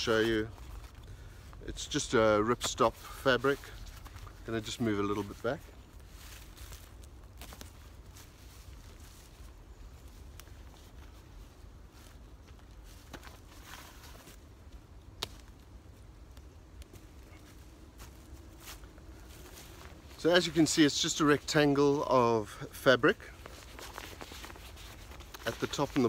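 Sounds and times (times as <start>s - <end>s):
footsteps in dry leaves: 0.0s - 16.1s, 16.8s - 26.0s.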